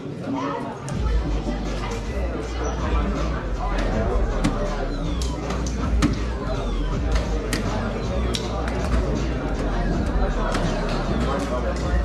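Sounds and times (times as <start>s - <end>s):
chatter of busy hall: 0.0s - 12.0s.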